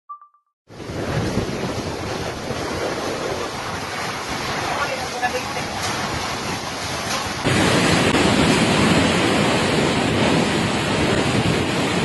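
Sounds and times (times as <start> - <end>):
driving rain: 0.7 - 12.0
strong wind: 0.7 - 12.0
wind gusts buffeting microphone: 0.7 - 12.0.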